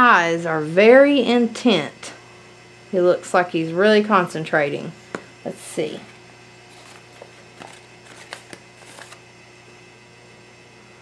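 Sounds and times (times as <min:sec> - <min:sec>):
low electrical hum: 0:00.0 - 0:11.0
packaging crinkle: 0:06.7 - 0:09.2.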